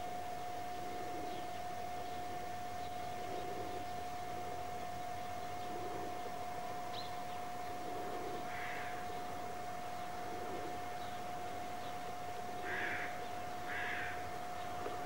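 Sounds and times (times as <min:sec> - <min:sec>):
high-pitched hum: 0:00.0 - 0:15.0
steady hiss: 0:00.0 - 0:15.0
harsh bird calls: 0:00.8 - 0:15.0.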